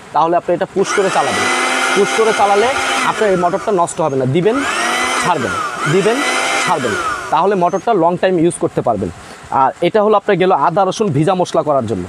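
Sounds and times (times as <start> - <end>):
blender motor whining: 0.8 - 7.9.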